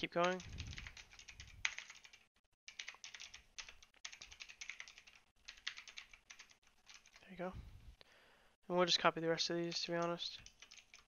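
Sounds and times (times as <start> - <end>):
typing on computer keyboard: 0.0 - 7.2, 9.7 - 11.0.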